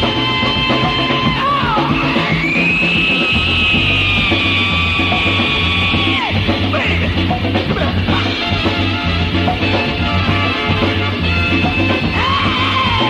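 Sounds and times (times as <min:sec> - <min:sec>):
disco-funk dance music: 0:00.0 - 0:13.0.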